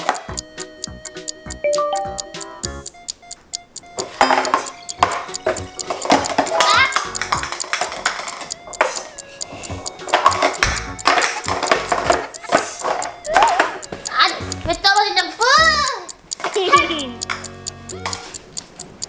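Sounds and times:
music: 0.0 - 16.0, 16.7 - 18.3
plastic cups clacking: 4.0 - 14.2
person speaking: 4.5 - 7.6, 8.4 - 18.4.

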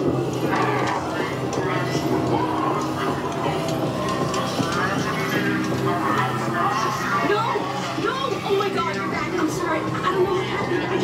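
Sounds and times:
low droning music: 0.0 - 11.0
voices yelling and shrieking: 0.0 - 11.0.

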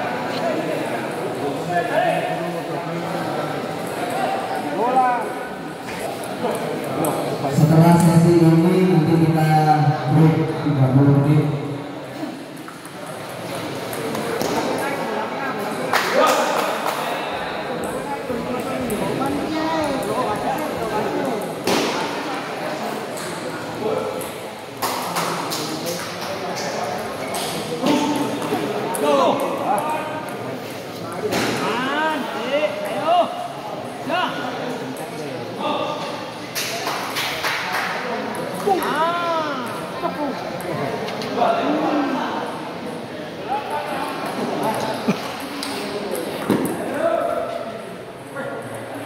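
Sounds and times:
people talking: 0.0 - 24.4, 37.5 - 49.0.

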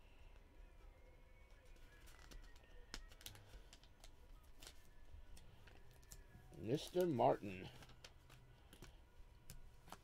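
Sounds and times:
trading cards being handled: 1.4 - 10.0.

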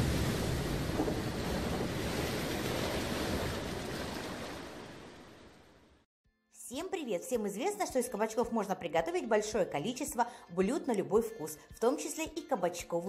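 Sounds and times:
rushing water: 0.0 - 5.8.

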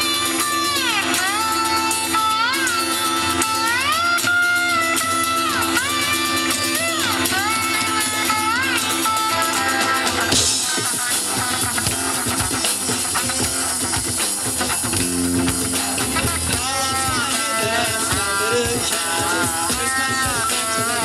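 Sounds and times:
guitar lead with bending notes: 0.0 - 21.0
live band playing instrumental: 0.0 - 21.0.

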